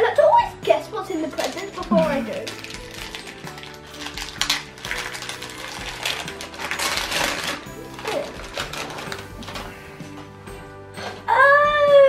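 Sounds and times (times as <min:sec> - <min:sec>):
background music: 0:00.0 - 0:12.0
wrapping paper crinkling and tearing: 0:01.3 - 0:09.9.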